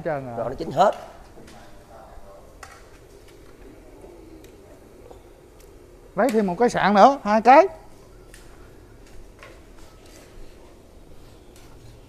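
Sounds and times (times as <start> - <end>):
faint murmur of voices: 0.0 - 6.3, 7.7 - 12.0.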